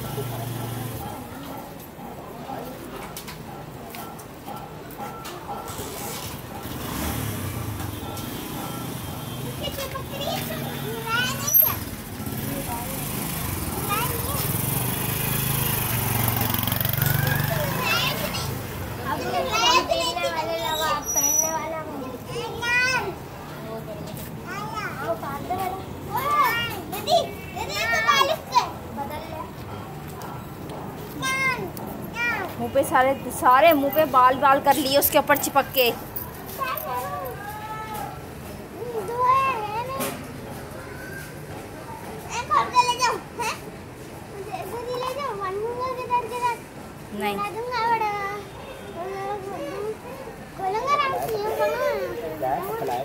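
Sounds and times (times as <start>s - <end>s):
people's voices: 0.0s - 53.0s.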